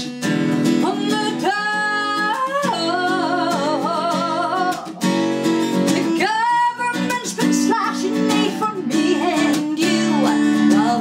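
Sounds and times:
strummed acoustic guitar: 0.0 - 11.0.

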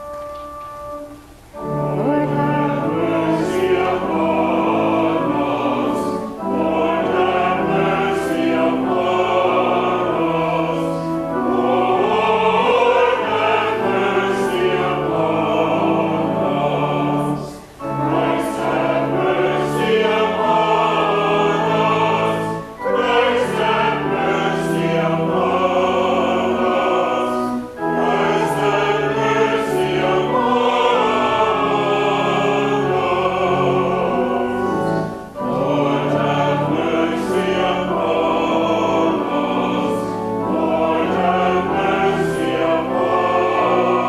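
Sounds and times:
church choir singing: 0.0 - 44.0
organ: 0.0 - 44.0.

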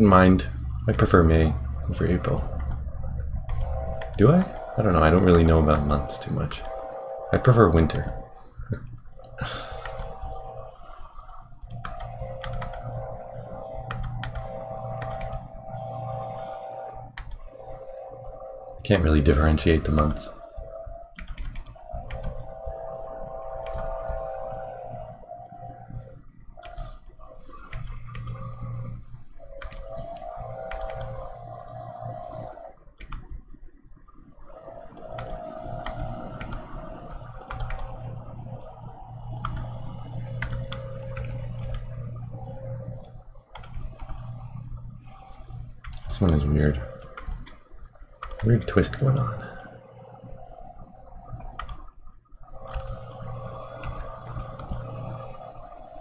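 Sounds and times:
low droning hum: 0.0 - 56.0.

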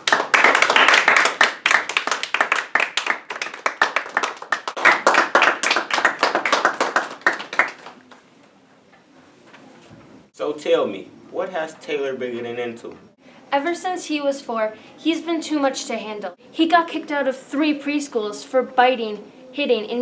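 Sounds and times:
people clapping: 0.0 - 8.3.

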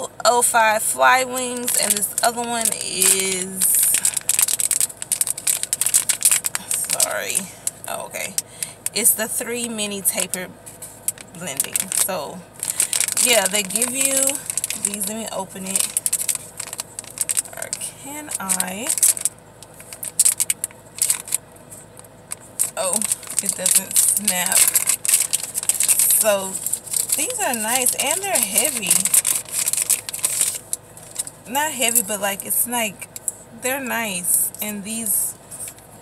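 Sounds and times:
plastic packaging crinkling: 1.3 - 9.1, 10.1 - 33.4
case rustling: 18.4 - 31.4.

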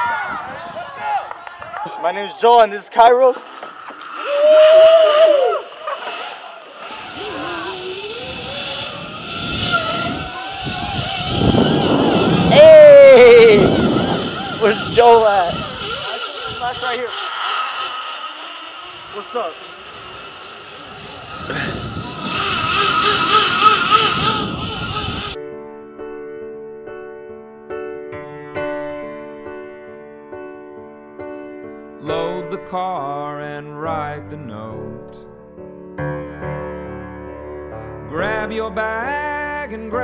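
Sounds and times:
zip line pulleys whining: 3.3 - 25.4
rushing rumble: 3.4 - 25.4
man yelling loudly: 12.4 - 13.8.

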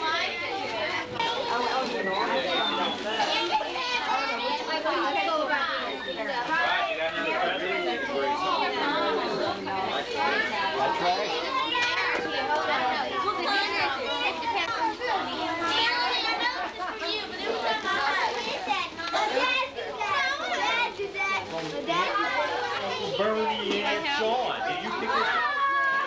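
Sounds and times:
crowd chatter with children: 0.0 - 26.0.

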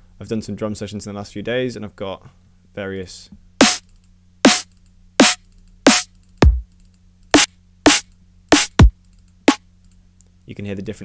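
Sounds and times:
synthesized snare hits: 3.6 - 3.8, 5.2 - 6.6, 7.4 - 8.0, 8.6 - 8.9
deep kick drum hits: 5.9 - 6.6, 8.6 - 8.9.

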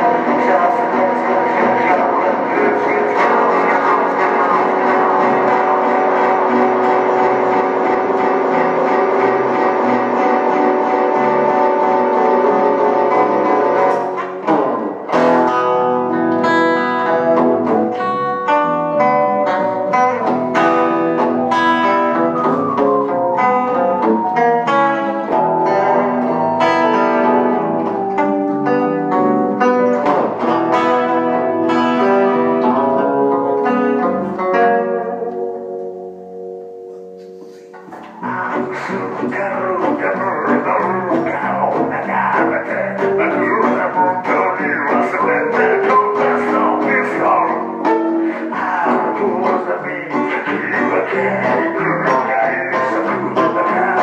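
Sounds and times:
guitar plucking a melody: 0.0 - 54.0.

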